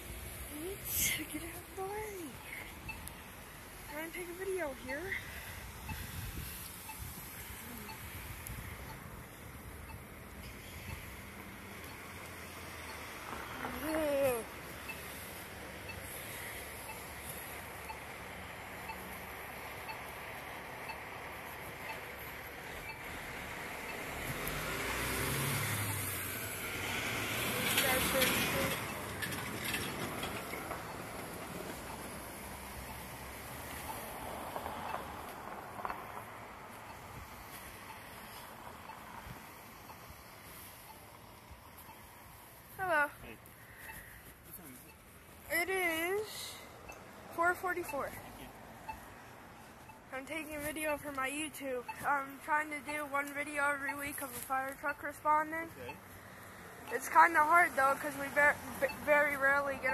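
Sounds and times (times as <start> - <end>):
traffic noise: 0.0 - 59.9
vehicle driving past: 22.8 - 36.4.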